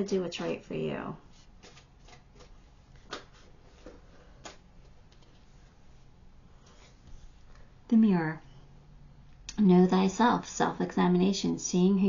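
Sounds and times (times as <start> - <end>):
playing cards rustling: 1.5 - 5.7.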